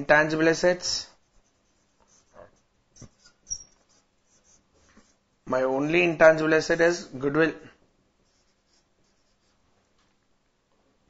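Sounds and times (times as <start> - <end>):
marker on whiteboard: 0.3 - 5.2, 8.2 - 9.7
marker squeak: 1.2 - 5.2.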